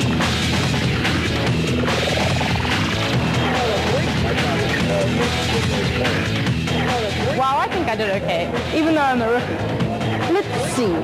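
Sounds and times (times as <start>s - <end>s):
loud rock backing music: 0.0s - 11.0s.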